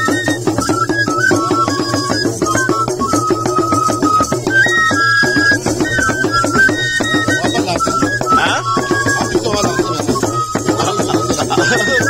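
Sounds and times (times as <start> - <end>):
hand drums in quick rhythm: 0.0 - 12.0
small flutes playing melody: 0.0 - 12.0.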